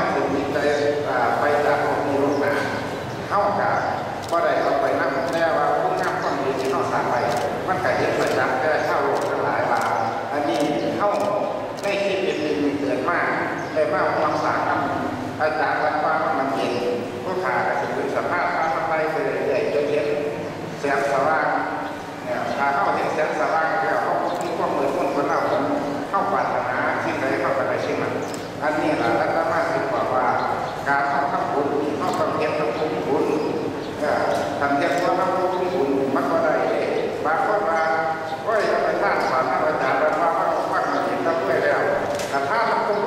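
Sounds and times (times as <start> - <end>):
man speaking into a microphone: 0.0 - 43.0.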